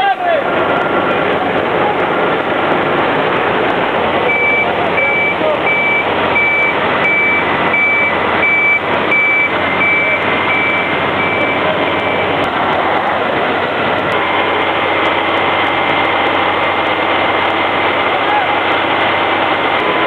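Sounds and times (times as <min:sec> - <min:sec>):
vehicle engine noise: 0:00.0 - 0:20.0
reversing alarm beeps: 0:04.3 - 0:12.3.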